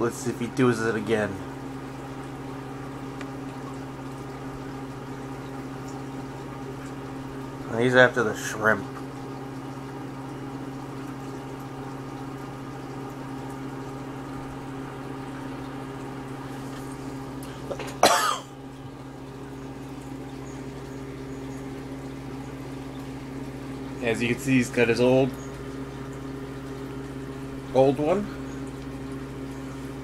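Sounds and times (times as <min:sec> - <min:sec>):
aquarium air pump humming: 0:00.0 - 0:30.0
bubbling water: 0:00.0 - 0:30.0
person coughing: 0:17.7 - 0:18.5.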